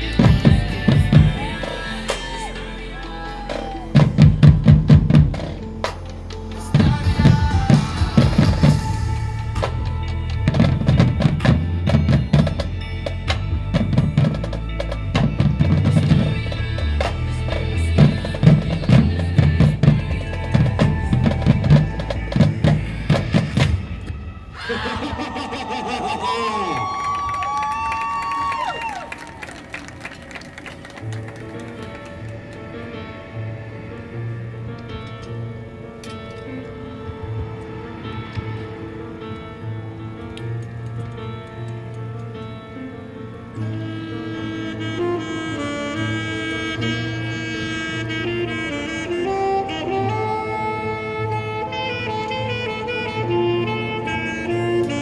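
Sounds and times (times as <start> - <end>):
marching band playing: 0.0 - 24.2
snare and bass drums: 0.1 - 2.2, 3.5 - 8.9, 9.6 - 23.8.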